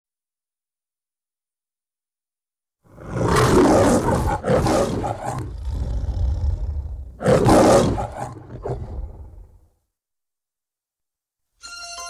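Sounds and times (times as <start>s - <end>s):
lion growling: 2.9s - 9.6s
lion roaring: 2.9s - 9.6s.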